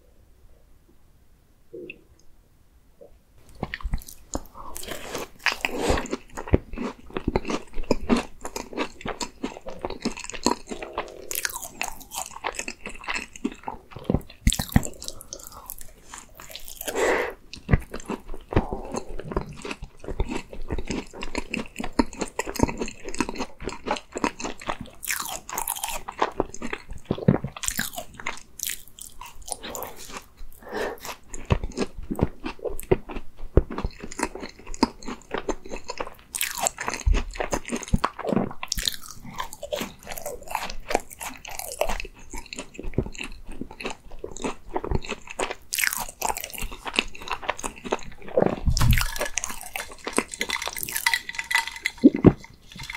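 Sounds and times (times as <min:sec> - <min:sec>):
person chewing: 0:03.4 - 0:52.9
pastry crunching: 0:03.5 - 0:30.4, 0:31.0 - 0:52.9.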